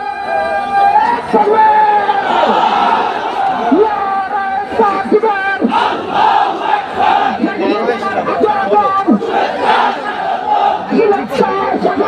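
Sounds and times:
man shouting over loudspeaker: 0.0s - 6.0s, 6.6s - 12.0s
crowd shouting: 0.0s - 12.0s.

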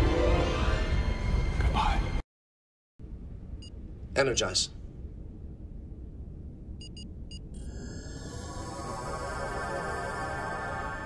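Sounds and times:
low steady rumble: 3.0s - 11.0s
shimmering ringing tones: 7.7s - 11.0s.

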